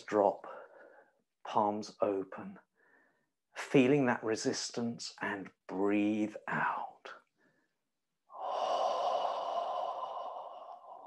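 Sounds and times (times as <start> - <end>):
person exhaling slowly: 8.3 - 11.0.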